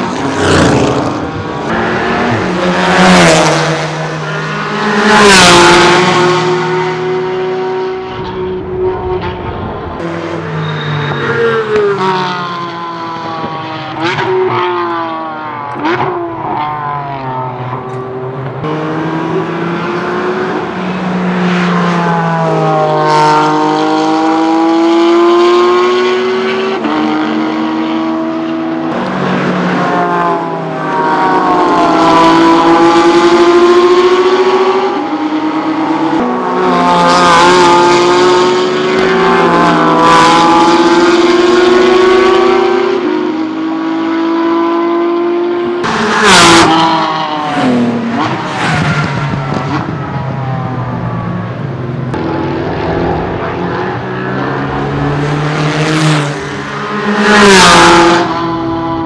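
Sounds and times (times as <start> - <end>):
race car engines accelerating: 0.0 - 59.0.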